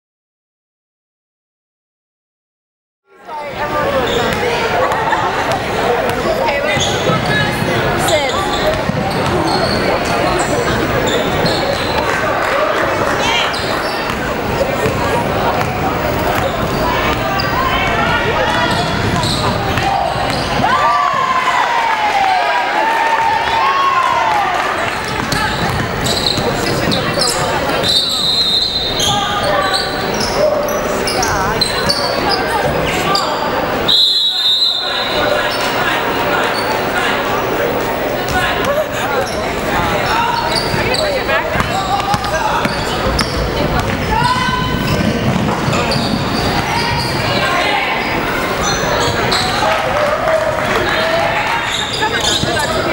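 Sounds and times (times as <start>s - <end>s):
players and spectators voices: 3.1s - 52.9s
shoe squeaks: 6.6s - 12.1s, 13.4s - 14.2s, 15.6s - 17.8s, 18.6s - 20.6s, 25.1s - 33.5s, 39.2s - 49.7s, 51.6s - 52.9s
referee's whistle blast: 27.8s - 29.9s, 33.9s - 35.4s.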